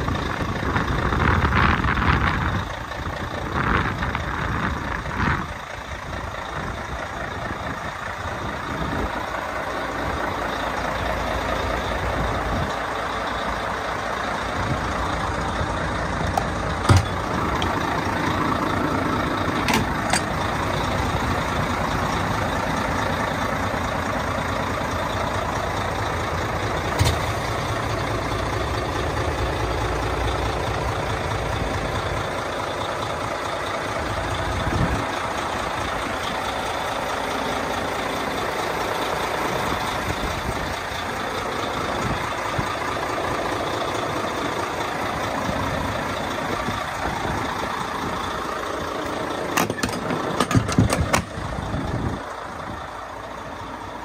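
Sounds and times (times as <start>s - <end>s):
diesel truck engine idling: 0.0s - 54.0s.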